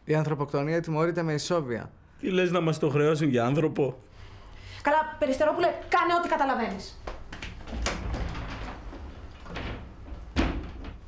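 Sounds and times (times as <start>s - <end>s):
soft knocks of door: 7.6s - 11.0s
door closing with a bang: 9.5s - 11.0s.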